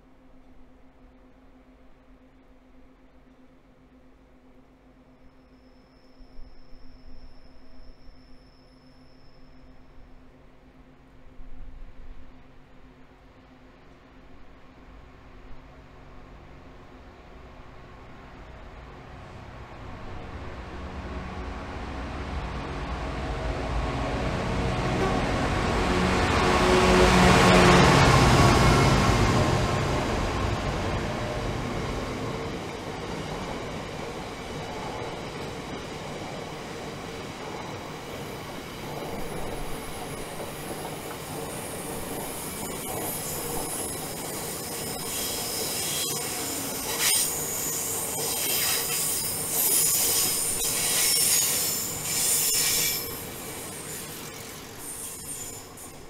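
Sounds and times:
diesel locomotive engine: 14.6 - 56.0
high-pitched wheel squeal: 42.2 - 56.0.

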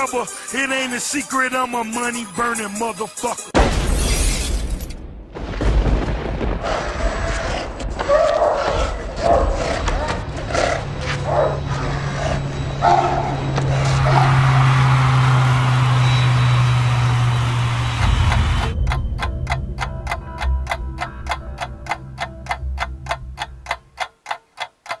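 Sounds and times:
low hum: 11.0 - 24.0
rapid ticking: 16.6 - 25.0.

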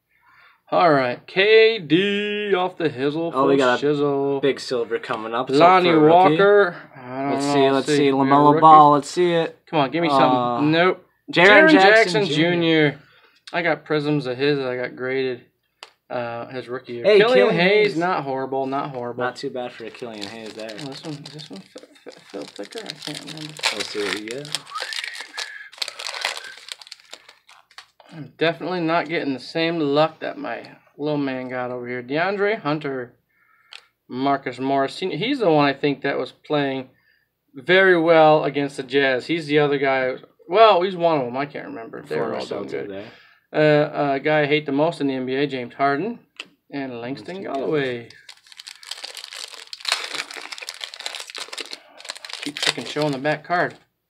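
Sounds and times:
wrapper crinkling and tearing: 19.6 - 28.0, 47.5 - 53.4.

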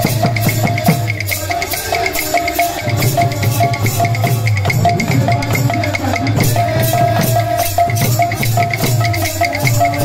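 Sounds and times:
barrel drum beat: 0.0 - 10.0
jingling percussion: 0.0 - 10.0.

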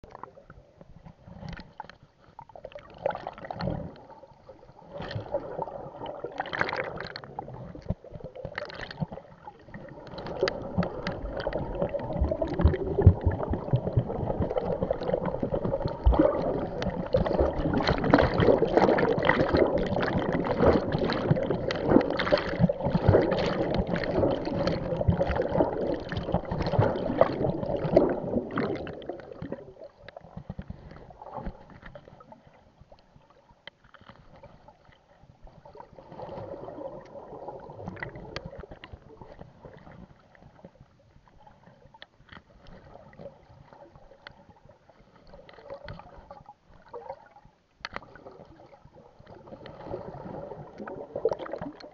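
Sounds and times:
water sloshing and gurgling: 0.0 - 51.9
swimming splashes: 4.7 - 32.4.

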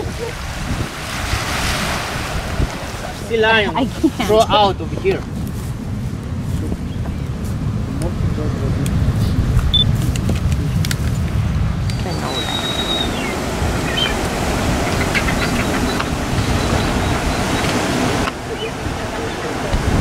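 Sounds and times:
surf breaking over rocks: 0.0 - 20.0
wind rumbling on microphone: 0.0 - 20.0.

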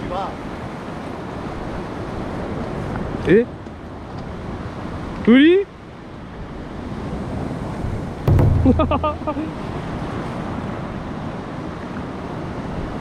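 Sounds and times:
surf washing against rocks: 0.0 - 3.3.

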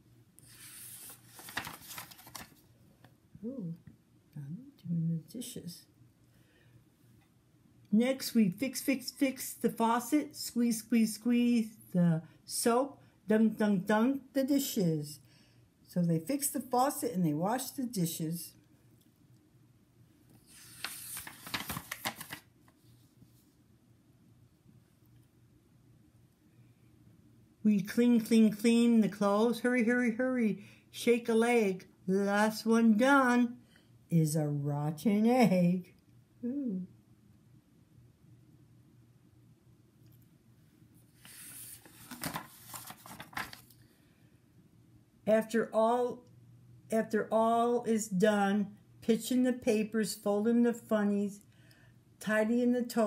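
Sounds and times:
book page turning: 0.4 - 2.7, 20.3 - 23.5, 41.1 - 43.8
paper rustles and taps: 1.0 - 2.6, 20.7 - 22.8, 41.2 - 43.7.

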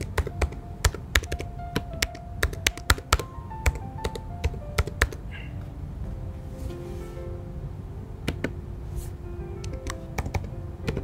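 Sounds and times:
computer keyboard typing: 0.0 - 5.2, 9.6 - 11.0
soft background music: 0.0 - 11.0.

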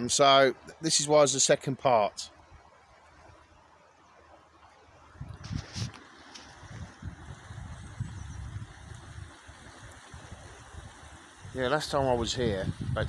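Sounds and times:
faint river rushing: 0.0 - 13.0
wind buffeting microphone: 5.1 - 13.0.

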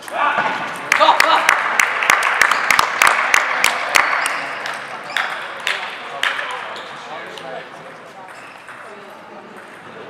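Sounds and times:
table tennis balls bouncing: 0.0 - 7.0, 8.1 - 10.0
murmur of voices: 3.4 - 10.0.

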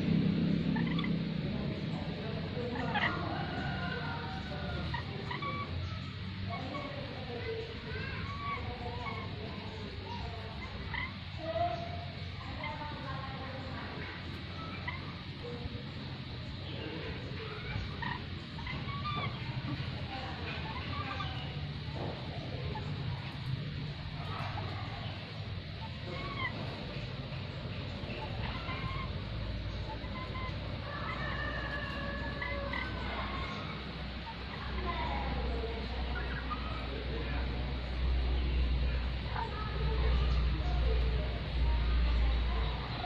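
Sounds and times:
birds squawking and chirping: 0.0 - 43.0
steady low hum: 0.0 - 43.0.

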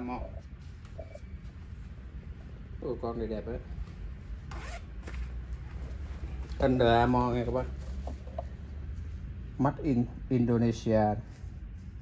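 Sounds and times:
jacket fabric rustling: 3.8 - 9.2.

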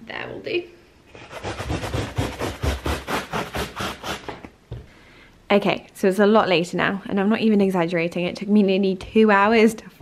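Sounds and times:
handsaw cutting wooden board: 1.1 - 4.4.

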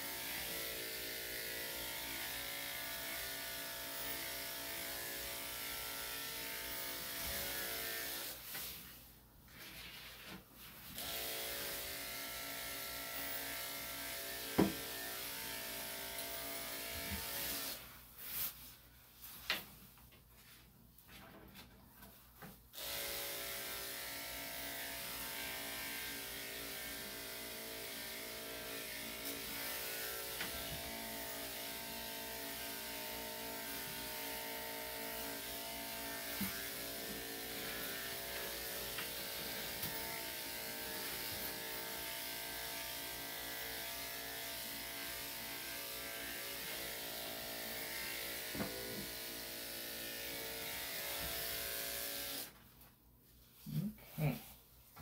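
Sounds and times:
electric clippers running: 0.0 - 8.6, 11.0 - 17.8, 22.8 - 52.6.

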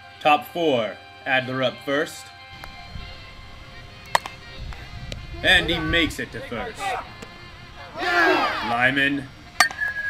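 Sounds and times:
faint background music: 0.0 - 10.0
bat cracking ball: 2.6 - 8.6, 9.5 - 10.0.

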